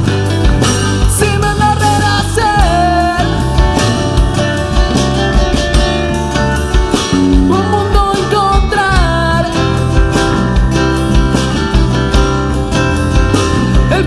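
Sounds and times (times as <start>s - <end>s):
drum kit beat: 0.0s - 14.0s
electric bass: 0.0s - 14.0s
sliding lead melody: 0.0s - 14.0s
strummed acoustic guitars: 0.0s - 14.0s.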